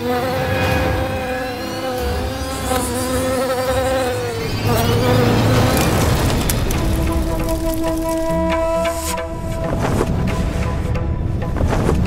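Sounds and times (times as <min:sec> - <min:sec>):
flying insect buzzing: 0:00.0 - 0:10.5.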